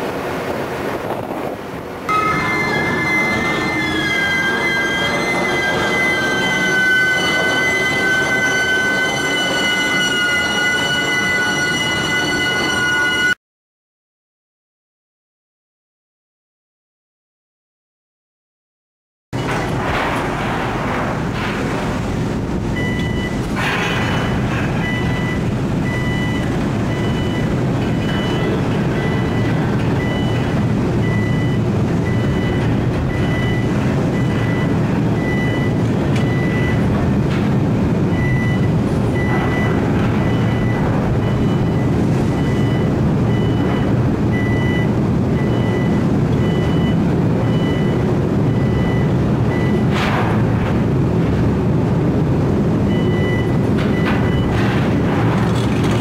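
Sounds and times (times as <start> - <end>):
deck machinery rumble: 0.0 - 13.4, 19.4 - 56.0
warning beeps: 2.1 - 13.4, 22.8 - 23.4, 24.0 - 36.9, 38.1 - 50.0, 52.9 - 54.6.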